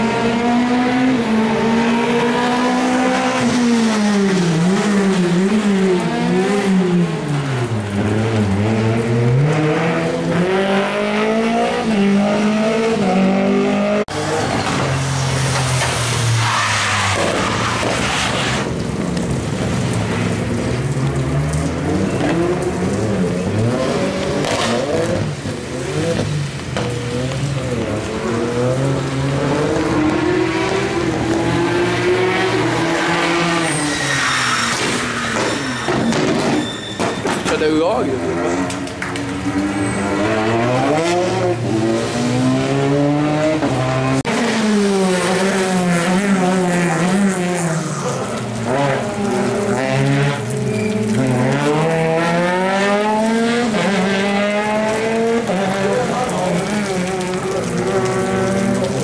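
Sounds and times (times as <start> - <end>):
rally car engine revving: 0.0 - 36.6, 37.3 - 59.0.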